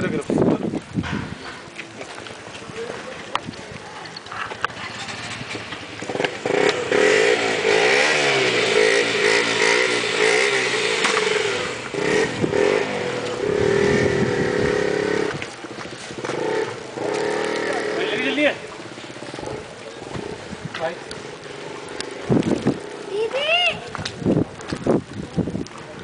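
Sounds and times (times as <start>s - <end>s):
motorcycle engines revving: 4.0s - 24.9s.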